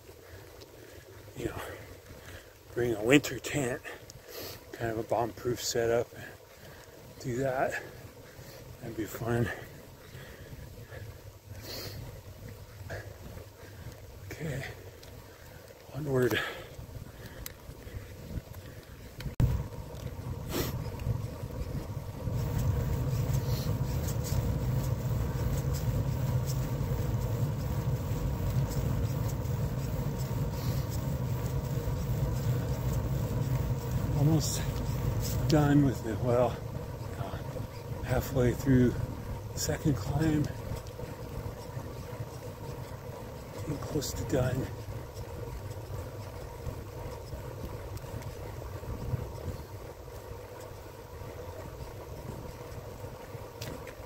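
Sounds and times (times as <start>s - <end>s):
bicycle tyre and wind noise: 0.0s - 54.0s
rider voice or breath: 6.1s - 7.1s, 9.4s - 12.2s, 12.9s - 19.1s.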